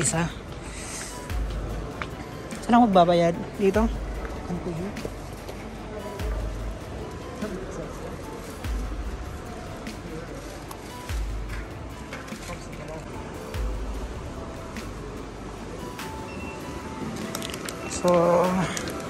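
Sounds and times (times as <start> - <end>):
background music: 0.0 - 19.0
indistinct voices: 0.0 - 19.0.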